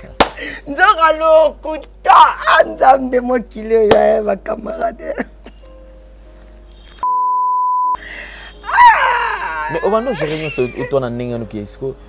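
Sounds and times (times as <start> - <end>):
censor bleep: 7.0 - 8.0.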